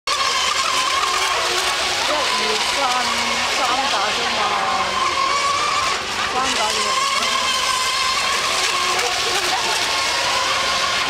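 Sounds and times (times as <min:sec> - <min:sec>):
model boat motor whining: 0:00.1 - 0:11.0.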